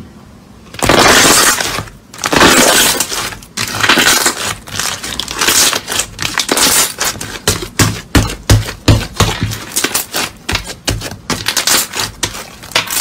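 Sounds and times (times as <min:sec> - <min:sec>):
slime crackling and popping: 0:00.8 - 0:13.0.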